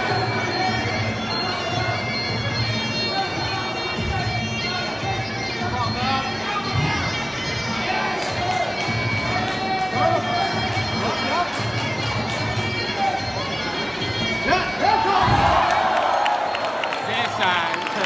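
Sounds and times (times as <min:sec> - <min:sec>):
reedy wind instrument: 0:00.0 - 0:16.6
crowd cheering: 0:14.2 - 0:18.0
crowd shouting: 0:14.2 - 0:18.0.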